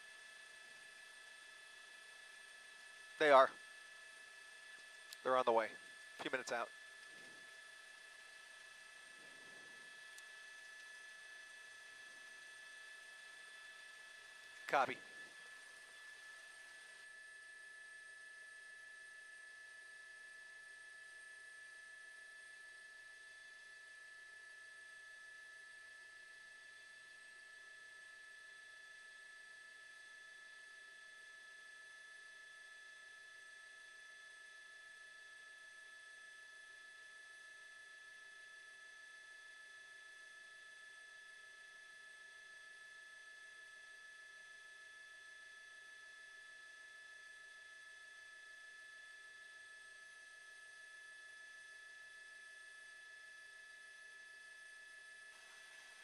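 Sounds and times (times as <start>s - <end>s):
faint steady whine: 0.0s - 56.0s.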